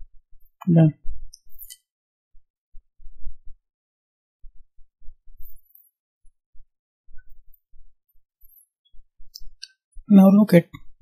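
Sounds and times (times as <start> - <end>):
person narrating: 0.6 - 1.0, 10.1 - 10.8.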